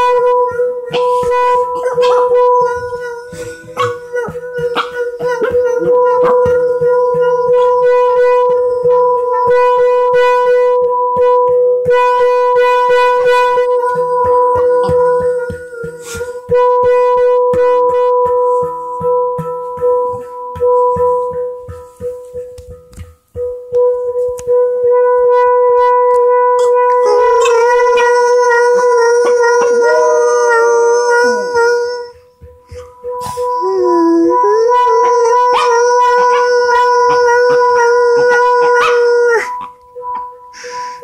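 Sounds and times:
dog howling: 0:00.0 - 0:09.2, 0:13.6 - 0:16.4, 0:26.7 - 0:32.2, 0:33.3 - 0:39.8
handpan note ringing: 0:00.0 - 0:41.0.

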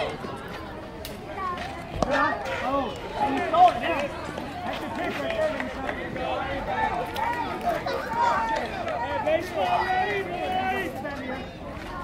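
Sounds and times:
people calling out and talking: 0:00.0 - 0:12.0.

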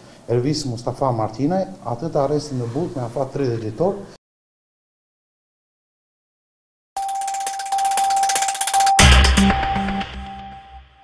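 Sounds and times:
news logo jingle: 0:07.0 - 0:11.0.

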